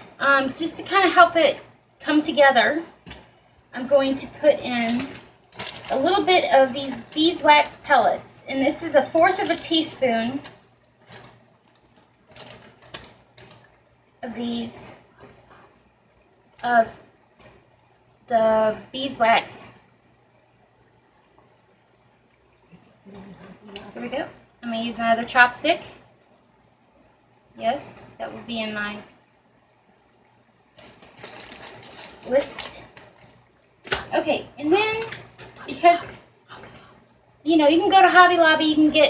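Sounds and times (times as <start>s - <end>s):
plastic bag crinkling: 4.6s - 7.9s, 9.0s - 13.9s, 30.7s - 34.1s.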